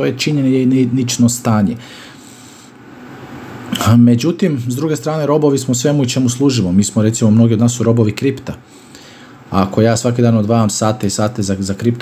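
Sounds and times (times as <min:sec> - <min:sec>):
man speaking: 0:00.0 - 0:01.8, 0:03.7 - 0:08.7, 0:09.5 - 0:12.0
man inhaling breathily: 0:01.8 - 0:02.8, 0:08.7 - 0:09.4.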